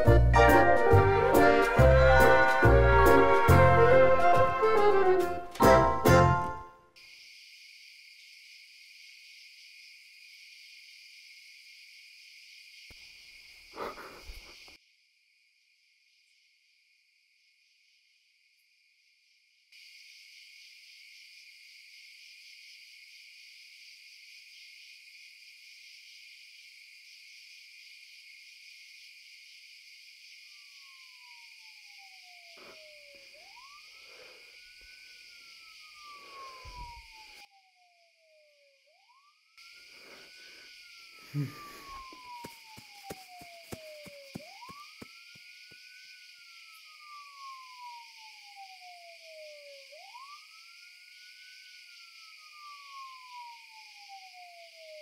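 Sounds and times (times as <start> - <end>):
crickets chirring: 6.9 - 55.0.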